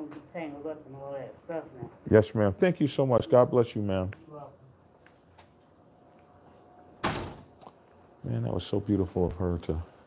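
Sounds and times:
door closing thud: 0:07.0 - 0:07.5.

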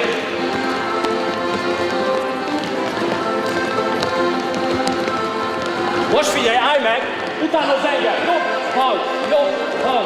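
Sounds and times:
children's footsteps on wooden floor: 0:00.0 - 0:10.0
folk dance music: 0:00.0 - 0:10.0.

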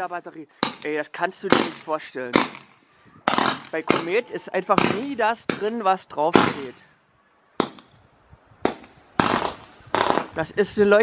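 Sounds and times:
firework launch pops: 0:07.6 - 0:07.9, 0:08.6 - 0:10.4.

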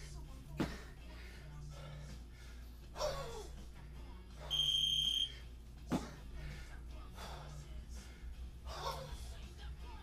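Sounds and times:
high electronic beep: 0:04.5 - 0:05.3.

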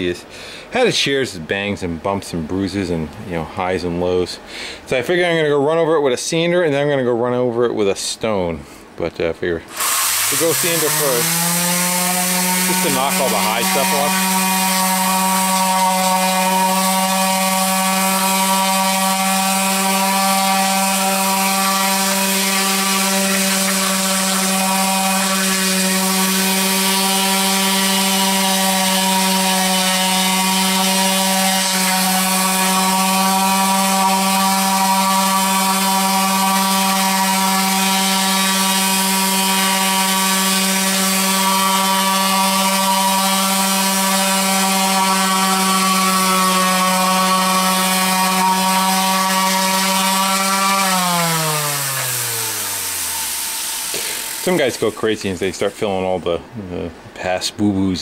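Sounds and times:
orbital sander running on metal: 0:09.7 - 0:55.0.

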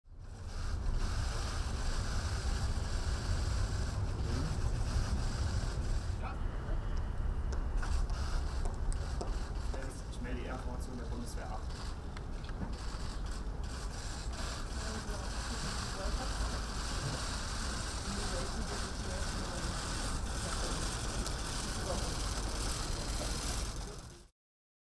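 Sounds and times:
low rumble and hiss: 0:00.1 - 0:24.3
faint voices: 0:14.3 - 0:24.3.

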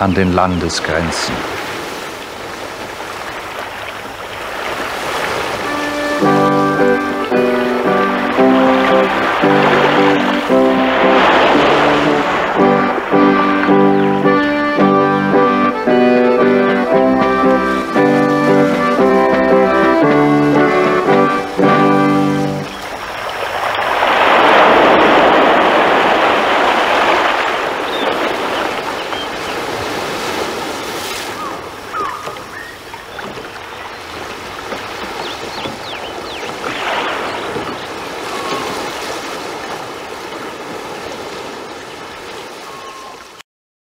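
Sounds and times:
sea waves washing on shore: 0:00.0 - 0:43.4
brass music cue: 0:05.6 - 0:22.7.

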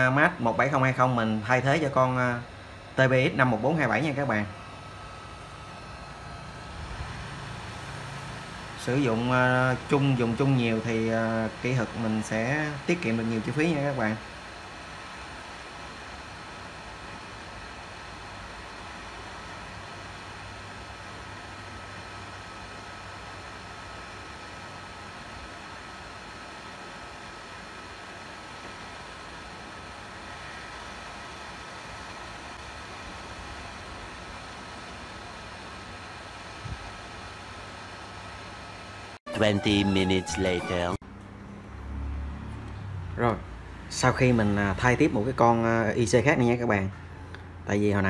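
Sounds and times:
faint high whine: 0:00.0 - 0:41.0
hot air station blowing: 0:00.0 - 0:41.0.

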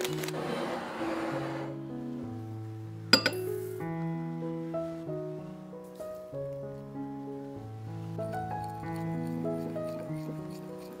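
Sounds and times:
soft piano music: 0:00.0 - 0:11.0
glass dish clinking on bowl: 0:03.1 - 0:03.5.

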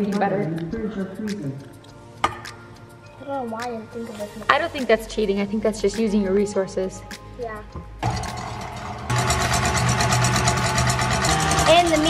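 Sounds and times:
stand mixer motor whirring: 0:08.0 - 0:12.0.

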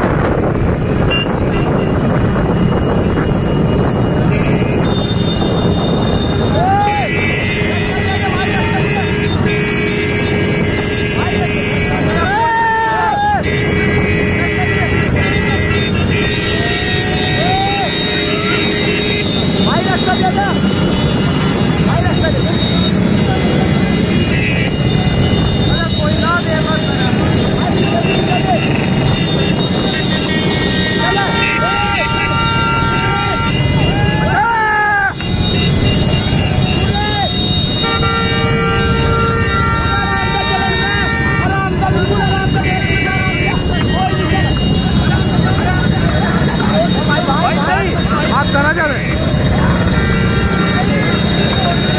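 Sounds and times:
vehicle engines din: 0:00.0 - 0:51.9
horns honking: 0:00.9 - 0:51.9
people shouting: 0:06.3 - 0:09.2, 0:11.1 - 0:20.8, 0:26.6 - 0:35.5, 0:36.2 - 0:51.9.

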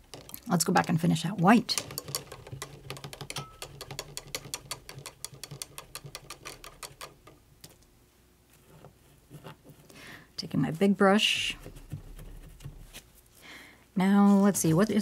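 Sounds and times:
paintbrush knocking inside cup: 0:00.0 - 0:07.2.

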